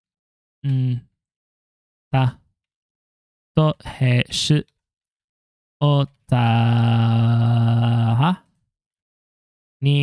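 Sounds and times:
man reading aloud: 3.6 - 4.7, 5.8 - 6.6.

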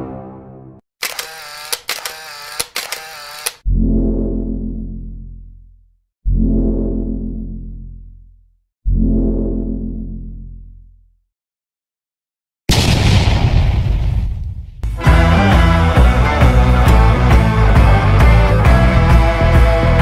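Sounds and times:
sharp clicks: 1.0 - 3.6.

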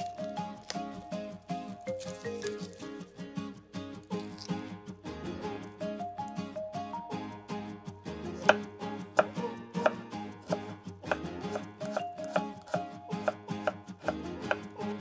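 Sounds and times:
light plucked string music: 0.0 - 15.0
knife chopping on wooden board: 8.4 - 14.7.

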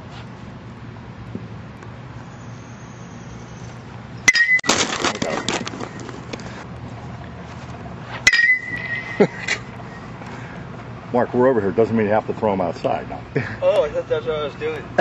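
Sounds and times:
metal bat hitting baseball: 4.3 - 5.6, 8.2 - 9.7.

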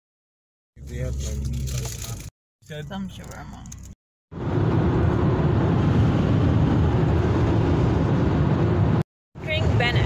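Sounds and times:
car cabin engine and road rumble: 0.8 - 10.0.

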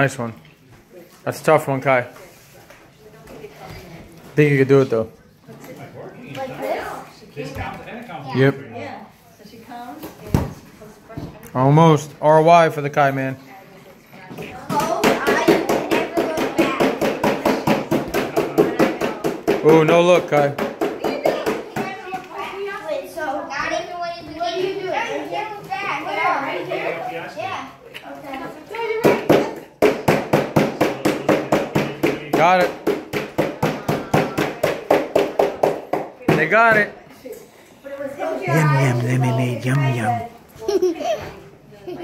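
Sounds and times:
voices: 38.5 - 40.4.

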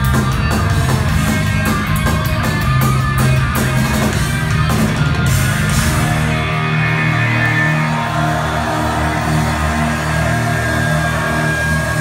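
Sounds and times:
live hard rock band: 0.0 - 12.0.

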